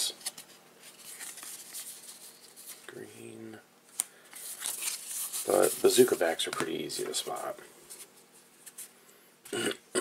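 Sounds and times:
cards rustling and sliding: 0.0s - 3.0s, 3.9s - 9.0s.

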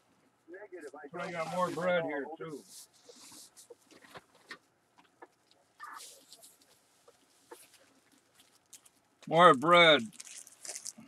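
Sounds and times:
plastic bag rustling: 5.4s - 11.0s.

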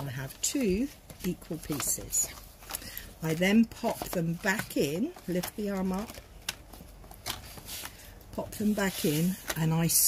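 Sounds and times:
card rustling: 0.0s - 10.0s.

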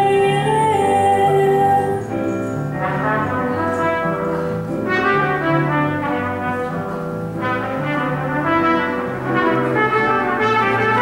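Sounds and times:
low accompaniment: 0.0s - 11.0s
trumpet jazz solo: 2.7s - 11.0s.

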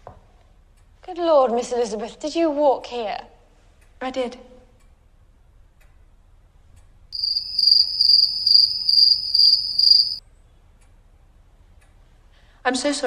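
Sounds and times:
crickets chirping: 7.2s - 10.2s.

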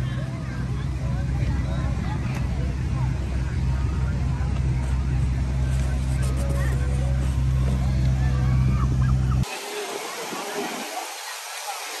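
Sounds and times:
low engine-like hum: 0.0s - 9.5s
faint voices chattering: 0.0s - 12.0s.

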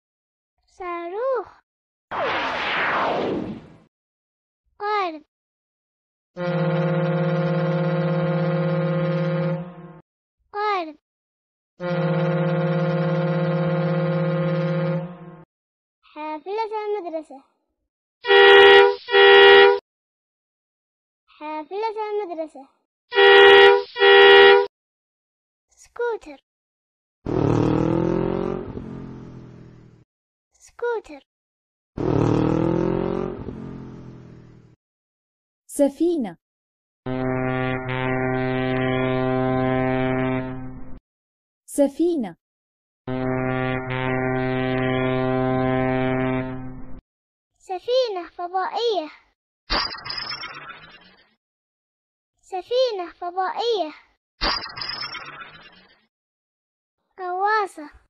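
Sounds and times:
boat horn blast: 6.4s - 10.0s, 11.8s - 15.4s, 18.2s - 19.8s, 23.1s - 24.7s, 37.1s - 40.7s, 43.1s - 46.8s.

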